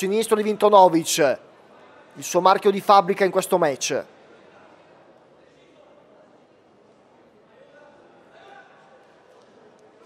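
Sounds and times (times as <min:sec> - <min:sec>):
faint voices in a hall: 0:00.0 - 0:10.0.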